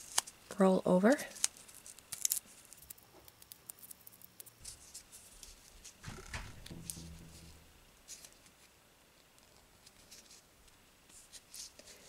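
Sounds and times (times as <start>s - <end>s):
masking tape crinkling: 0.0s - 0.5s, 1.1s - 12.0s.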